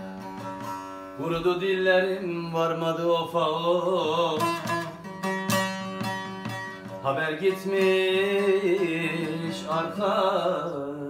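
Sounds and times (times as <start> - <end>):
plucked long-necked lute: 0.0 - 10.8.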